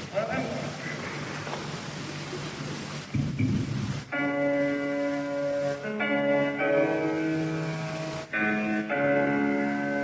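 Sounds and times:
crowd noise: 0.0s - 4.2s
tape hiss: 0.0s - 10.0s
low thumps: 3.1s - 4.1s.

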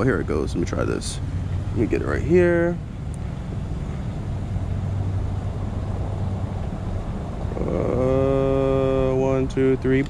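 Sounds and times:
low mechanical hum: 0.0s - 10.0s
low rumble: 0.0s - 10.0s.

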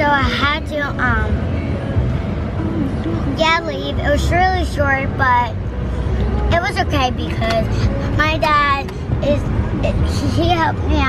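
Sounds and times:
girl talking: 0.0s - 1.4s, 2.8s - 5.6s, 6.5s - 11.0s
car cabin rumble: 0.0s - 11.0s.

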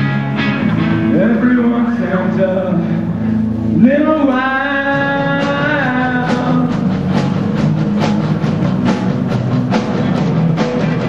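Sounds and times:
electric guitar: 0.0s - 11.0s
live rock band playing: 0.0s - 11.0s
man singing: 1.0s - 7.0s.

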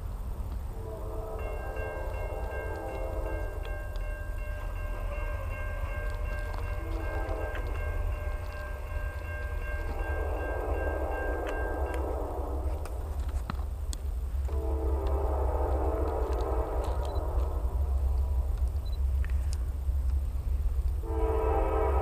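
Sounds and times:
low rumble: 0.0s - 22.0s
distant locomotive horn blasts: 0.5s - 13.6s, 14.3s - 19.5s, 20.5s - 22.0s
railroad crossing bell ringing: 0.6s - 13.3s, 20.4s - 22.0s.

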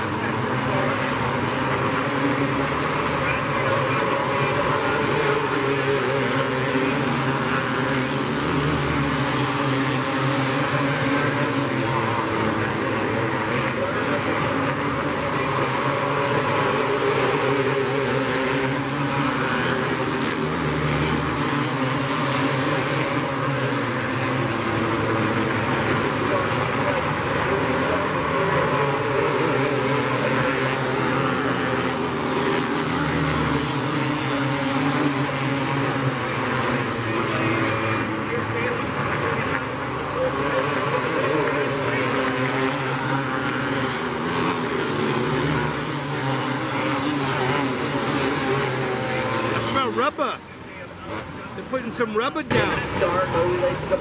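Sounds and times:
kart engines racing: 0.0s - 54.0s.

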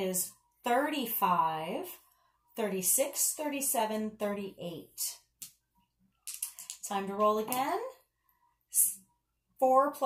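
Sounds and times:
coins and dice clicking: 6.2s - 6.9s.

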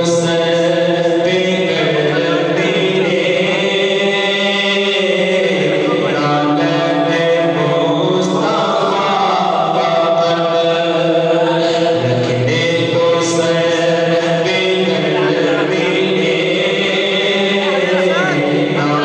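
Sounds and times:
man chanting into a microphone: 0.0s - 19.0s.

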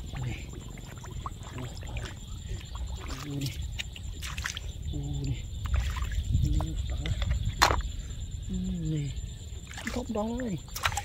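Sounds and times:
small wet clicks: 0.2s - 4.7s, 9.7s - 11.0s.

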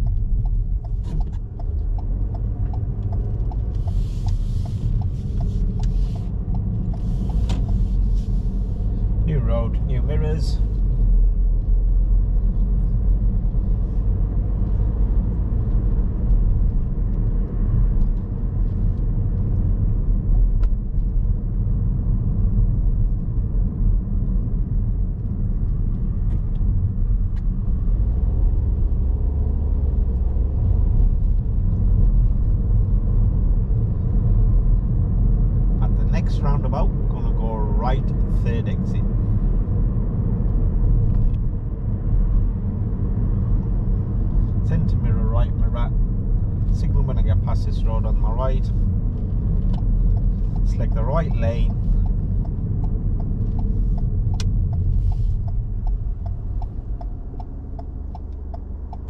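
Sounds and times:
car engine and tyre noise: 0.0s - 59.0s.

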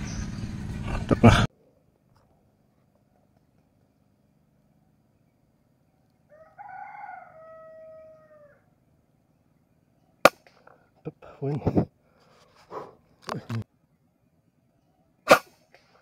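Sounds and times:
rooster crowing: 6.3s - 8.7s
air rifle shot: 15.3s - 16.0s.

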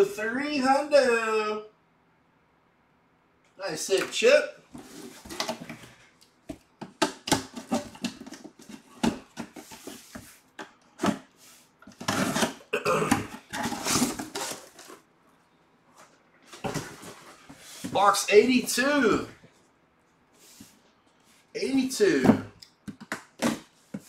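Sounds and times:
cardboard rustling and scraping: 4.7s - 6.1s, 7.4s - 12.6s, 13.3s - 15.1s, 15.9s - 18.8s
cardboard boxes knocking and tapping: 6.5s - 10.3s.

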